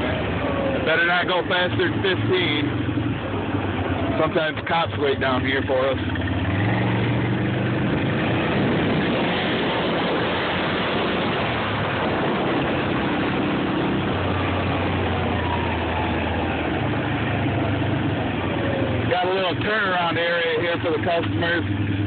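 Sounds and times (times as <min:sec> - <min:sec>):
quad bike engine running: 0:00.0 - 0:22.0
wind and tyres rushing: 0:00.0 - 0:22.0.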